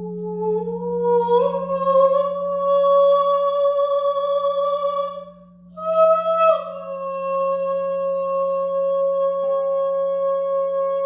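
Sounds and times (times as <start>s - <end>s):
singing bowl tone: 0.0s - 11.0s.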